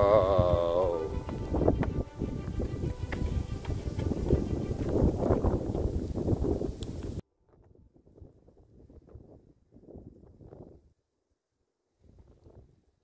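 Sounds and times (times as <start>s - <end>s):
gusts of wind: 0.0s - 10.9s
wind buffeting microphone: 0.0s - 11.0s.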